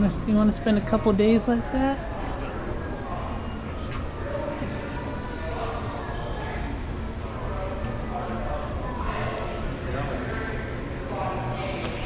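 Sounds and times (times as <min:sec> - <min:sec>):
indistinct chatter: 0:00.0 - 0:12.0.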